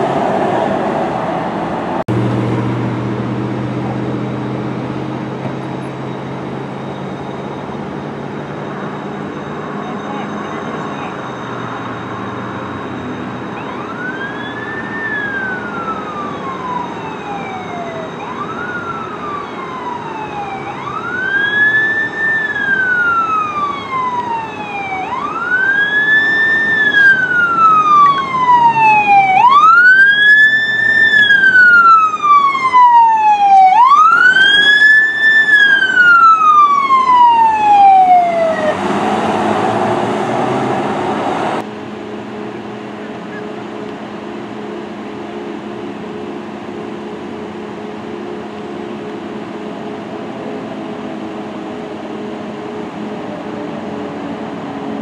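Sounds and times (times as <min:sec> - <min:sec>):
fire engine wail siren: 0:00.0 - 0:55.0
rushing noise: 0:00.0 - 0:55.0.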